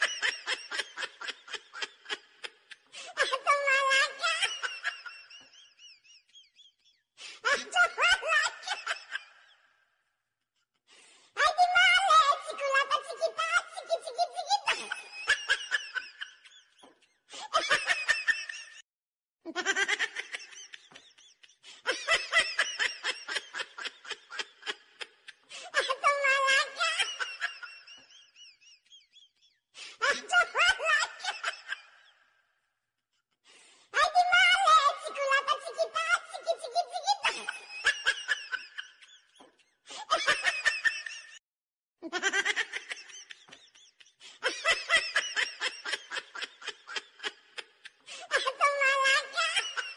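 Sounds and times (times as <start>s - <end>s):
high-pitched laughter: 0.0s - 9.6s, 11.4s - 18.8s, 19.5s - 32.2s, 34.0s - 41.4s, 42.0s - 49.9s.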